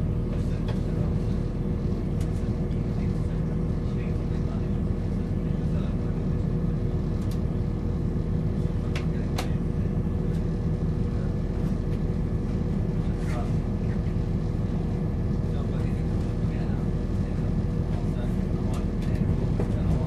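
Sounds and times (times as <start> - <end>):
diesel engine drone: 0.0 - 20.0
wheels rumbling on track: 8.6 - 20.0.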